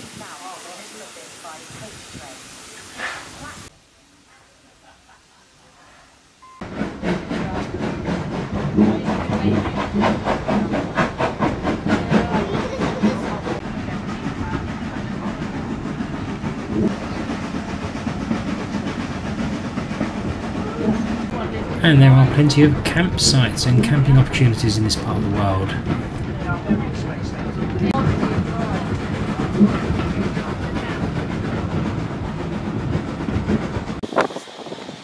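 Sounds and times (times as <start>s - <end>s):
steam train running: 0.0s - 5.7s, 6.3s - 35.0s.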